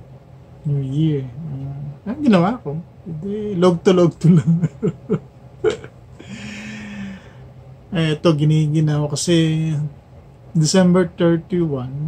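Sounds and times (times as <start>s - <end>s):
man chuckling: 4.2s - 7.3s
man's held breathy voice: 6.2s - 7.5s.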